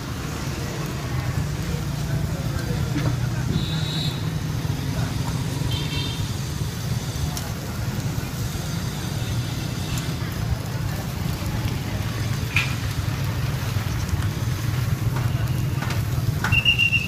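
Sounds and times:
road traffic rumble: 0.0 - 17.0
faint background voices: 0.6 - 16.8.

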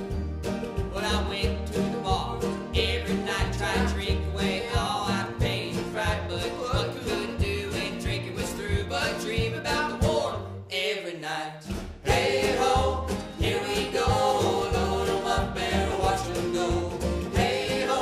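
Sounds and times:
banjo: 0.0 - 10.6, 11.6 - 18.0
plucked upright bass: 0.0 - 10.6, 11.7 - 18.0
strummed acoustic guitars: 0.0 - 10.6, 11.6 - 18.0.

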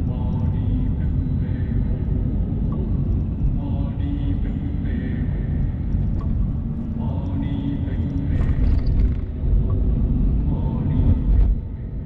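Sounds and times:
car road and engine noise: 0.0 - 12.0.

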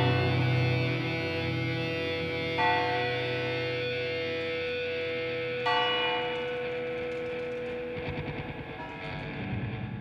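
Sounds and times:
sustained low note: 0.0 - 4.0
bell ringing: 0.0 - 8.0.

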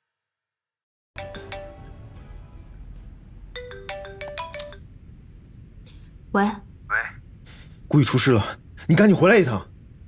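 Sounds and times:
smartphone ringtone chiming: 3.6 - 4.8.

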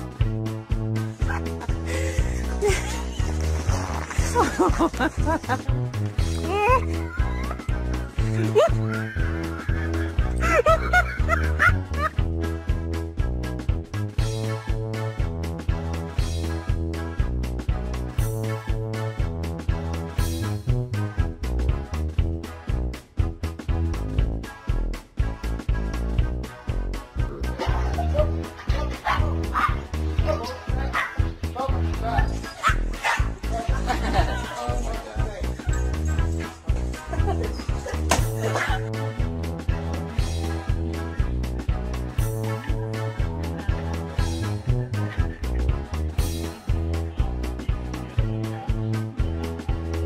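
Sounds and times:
background music with steady beat: 0.0 - 50.0
dog yipping and barking: 29.1 - 29.8, 31.0 - 31.2, 32.5 - 33.3.

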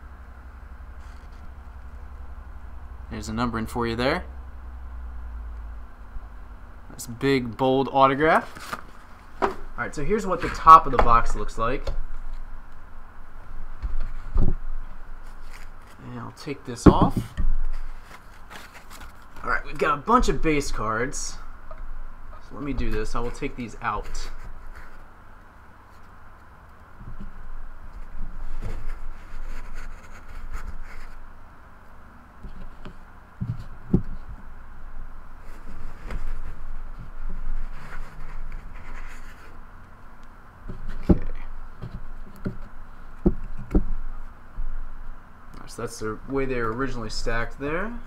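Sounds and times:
wooden box scraping and shuffling: 8.4 - 11.6.

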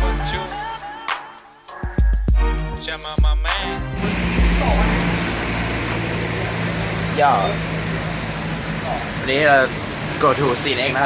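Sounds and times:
low mechanical hum: 4.0 - 10.4.

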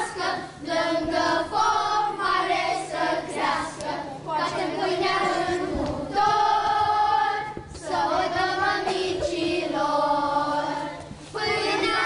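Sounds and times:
children singing in chorus: 0.0 - 12.0.

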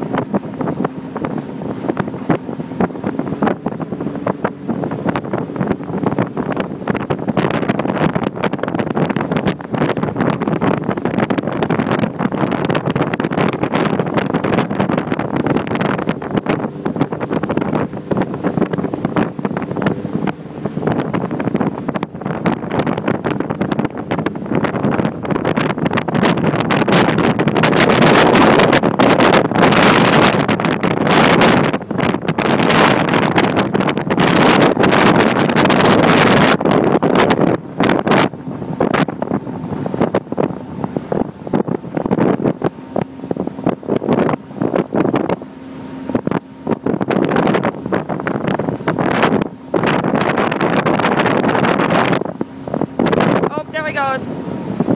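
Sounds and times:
boat engine running: 0.0 - 54.9
rush of boat wake: 0.0 - 54.9
wind buffeting microphone: 0.0 - 54.9.

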